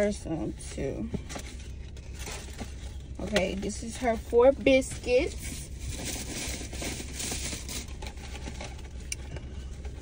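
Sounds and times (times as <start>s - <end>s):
car cabin hum: 0.0s - 10.0s
paper bag and containers rustling: 1.2s - 10.0s.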